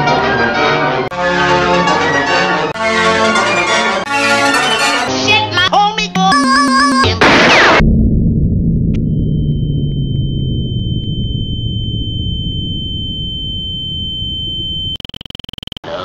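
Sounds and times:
high-pitched beep tone: 6.3 - 7.2, 9.0 - 15.8
low rumbling drone: 7.3 - 15.0.

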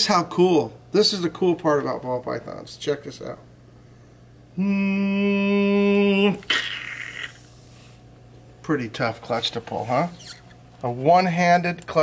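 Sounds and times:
breathy hiss: 6.3 - 8.1.

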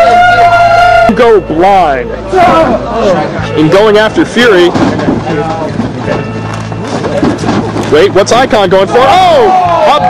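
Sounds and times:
faint voices: 0.0 - 10.0
bodies thudding on ring boards: 4.4 - 8.2.

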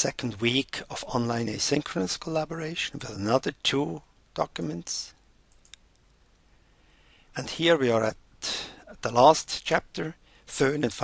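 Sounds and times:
computer mouse clicks: 5.5 - 6.1.

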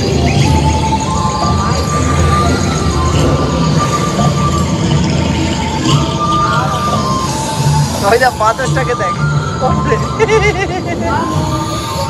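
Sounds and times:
ride car rumbling on track: 0.0 - 12.0
ride soundtrack music: 0.0 - 12.0.

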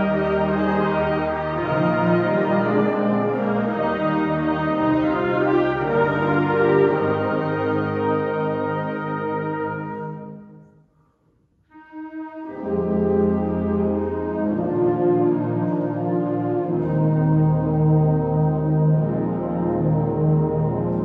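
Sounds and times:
wind band playing held chords: 0.0 - 10.7, 11.7 - 21.0.

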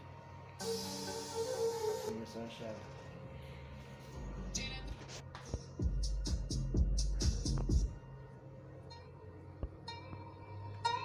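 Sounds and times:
music from speaker box: 0.0 - 11.0.

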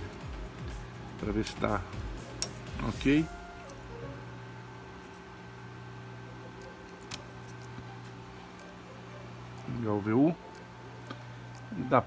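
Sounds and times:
electrical hum with low buzz: 0.0 - 12.0.

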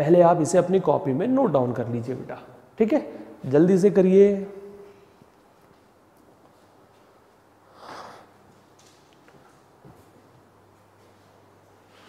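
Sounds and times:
person exhaling or sniffing: 7.7 - 8.4.

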